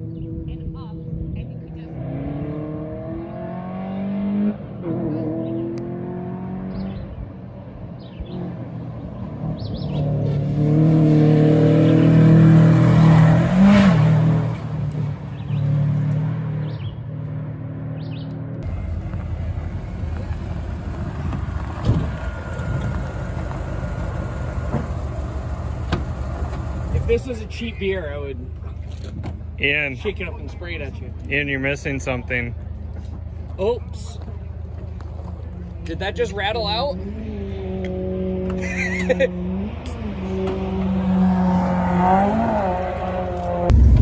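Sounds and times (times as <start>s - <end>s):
rally car engine revving past: 10.0s - 14.8s, 39.3s - 44.0s
steady low rumble: 18.6s - 27.2s, 43.7s - 44.0s.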